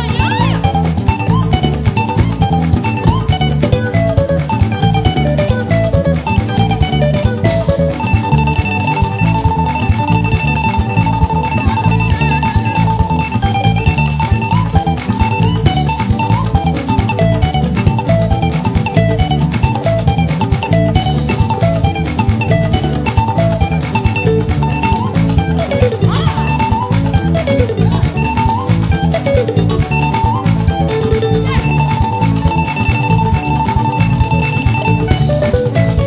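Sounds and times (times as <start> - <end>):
upbeat instrumental dance music: 0.0 - 36.0.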